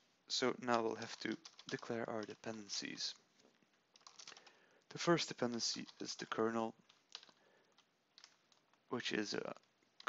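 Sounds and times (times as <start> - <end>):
faint keyboard keystrokes: 0.7 - 10.0.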